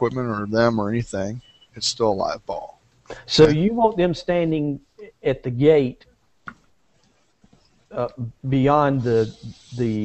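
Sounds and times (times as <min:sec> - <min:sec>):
man talking: 0:00.0 - 0:06.1, 0:07.9 - 0:10.0.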